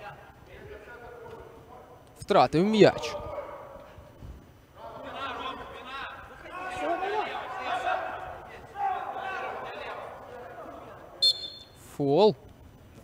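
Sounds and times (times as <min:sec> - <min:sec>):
men shouting in echoing hall: 0:02.9 - 0:04.1, 0:04.8 - 0:11.2.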